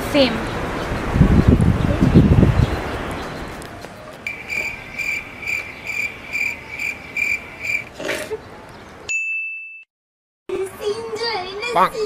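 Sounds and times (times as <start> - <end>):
long steady beep: 4.3 - 7.4.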